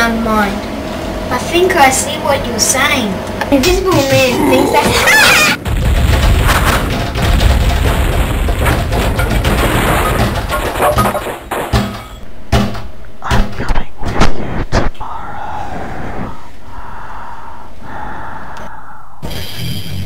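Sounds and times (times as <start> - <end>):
steady hum: 0.0 - 20.0
heavy thumps: 3.8 - 14.4.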